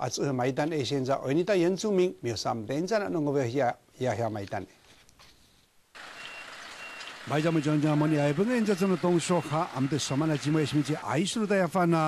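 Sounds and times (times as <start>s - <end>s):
reversing alarm beeping: 6.0s - 10.7s
truck engine: 6.0s - 11.2s
street noise: 6.0s - 12.0s.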